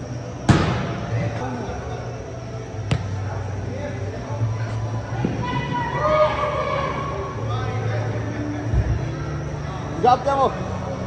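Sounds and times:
soccer ball struck with echo: 0:00.4 - 0:01.3, 0:02.8 - 0:03.4.

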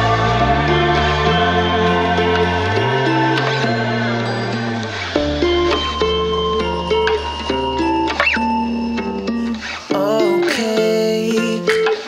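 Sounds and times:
person singing: 0:00.0 - 0:07.0, 0:09.3 - 0:12.0
low bass: 0:00.0 - 0:09.6
plucked guitar chords: 0:00.0 - 0:12.0.

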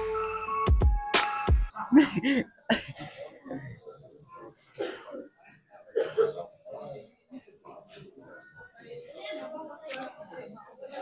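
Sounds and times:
man coughing: 0:04.8 - 0:05.3, 0:05.9 - 0:06.5.

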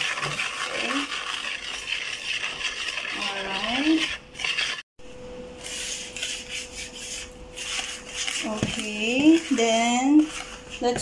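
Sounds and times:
whisk scraping batter in bowl: 0:00.0 - 0:04.9, 0:05.6 - 0:11.0.

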